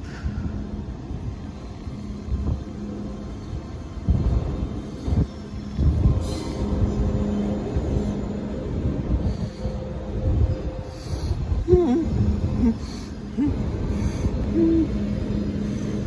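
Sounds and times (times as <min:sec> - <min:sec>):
electric train rumble: 0:00.0 - 0:16.0.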